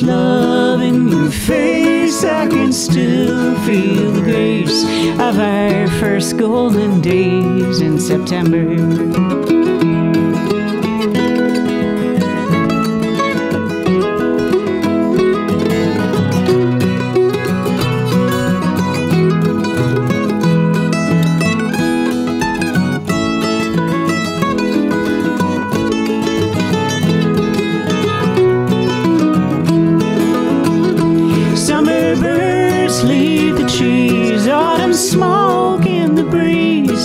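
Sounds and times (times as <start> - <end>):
acoustic guitar accompaniment: 0.0 - 37.0
mandolin picking a melody: 0.0 - 37.0.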